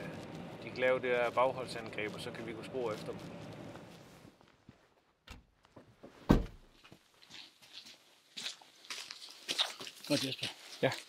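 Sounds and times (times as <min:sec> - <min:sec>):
light footsteps and scuffs: 0:01.3 - 0:11.0
vehicle door slamming: 0:06.2 - 0:06.7.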